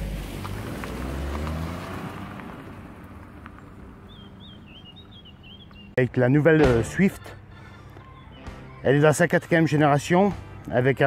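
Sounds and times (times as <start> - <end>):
car passing by: 0.0 - 4.2
bird singing: 3.5 - 10.7.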